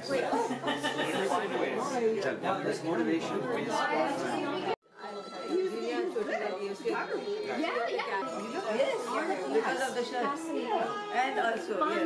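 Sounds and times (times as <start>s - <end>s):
people chattering in a room: 0.0s - 12.0s.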